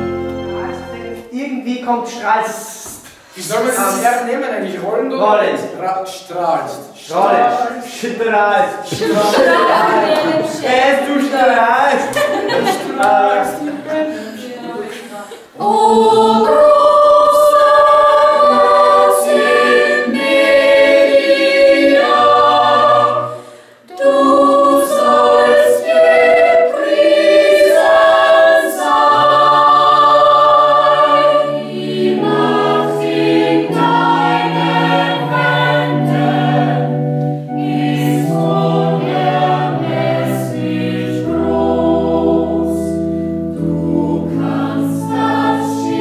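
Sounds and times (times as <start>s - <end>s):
mixed choir singing: 7.1s - 7.9s, 8.8s - 46.0s.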